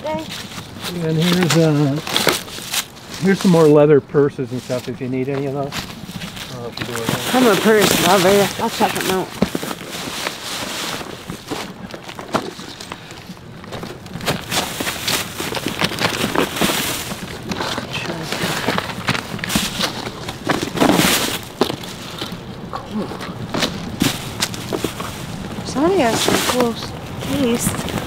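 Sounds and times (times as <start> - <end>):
plastic bag rustling: 0.0 - 28.0.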